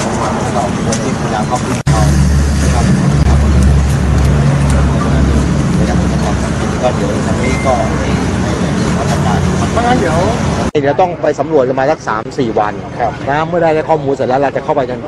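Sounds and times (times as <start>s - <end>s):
speech: 0.0s - 15.0s.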